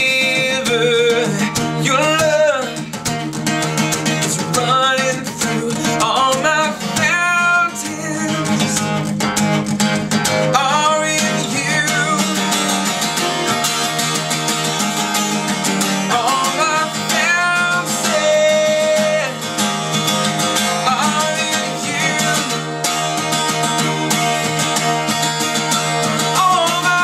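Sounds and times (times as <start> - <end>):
man singing: 0.0 - 9.1, 10.3 - 14.4, 15.7 - 27.0
acoustic guitar strumming: 0.0 - 27.0.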